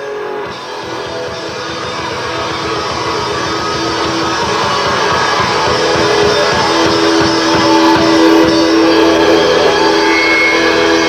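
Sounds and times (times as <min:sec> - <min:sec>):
electric guitar: 0:00.0 - 0:11.0
hard rock band playing live: 0:00.0 - 0:11.0.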